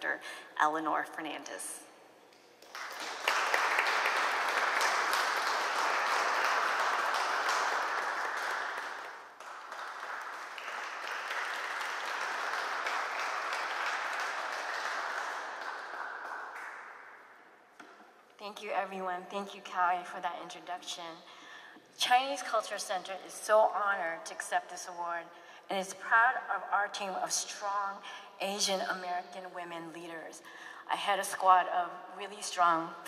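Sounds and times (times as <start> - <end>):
audience applauding: 2.6 - 17.2.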